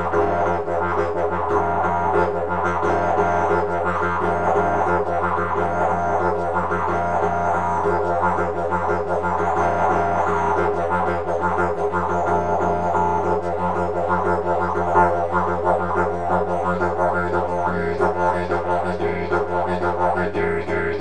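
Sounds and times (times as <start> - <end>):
didgeridoo rhythmic drone: 0.0 - 21.0.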